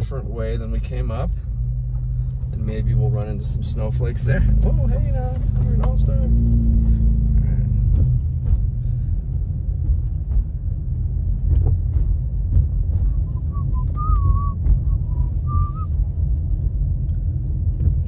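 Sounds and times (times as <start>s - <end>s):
car road and engine rumble: 0.0s - 18.0s
wavering whistle: 13.2s - 16.0s.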